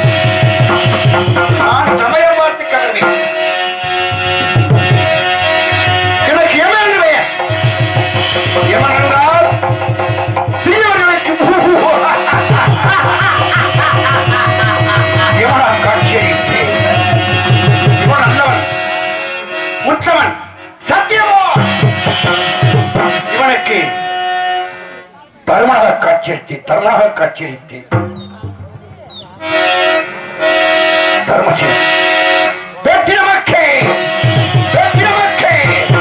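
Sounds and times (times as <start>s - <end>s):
drum fast even beat: 0.0s - 2.1s, 4.1s - 18.7s, 21.5s - 23.3s, 27.9s - 29.4s
harmonium chords: 0.0s - 25.4s, 27.6s - 36.0s
repeating melody: 0.1s - 20.1s, 27.9s - 36.0s.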